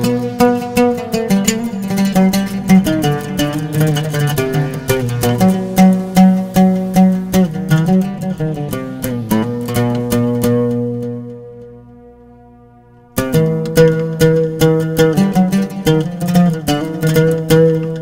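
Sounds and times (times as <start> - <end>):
oud plucked notes: 0.0 - 18.0.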